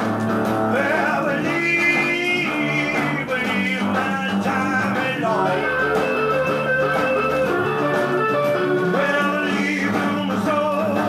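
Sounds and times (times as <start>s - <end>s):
blues-rock band with electric guitar: 0.0s - 11.0s.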